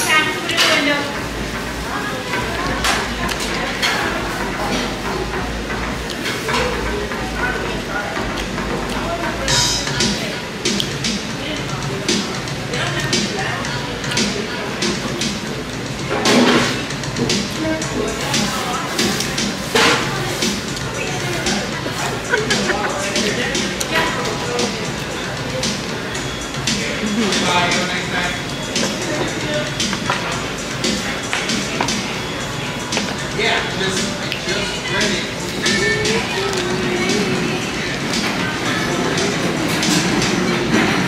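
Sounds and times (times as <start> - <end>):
diners chatting: 0.0 - 41.0
restaurant background music: 0.0 - 41.0.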